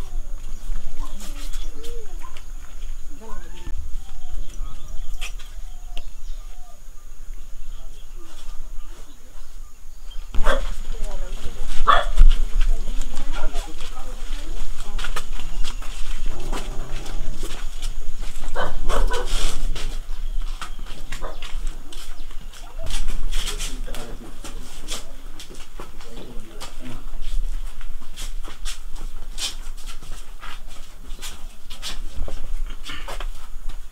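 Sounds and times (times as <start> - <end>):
people talking: 0.0 - 9.8, 10.4 - 18.0, 21.0 - 27.4.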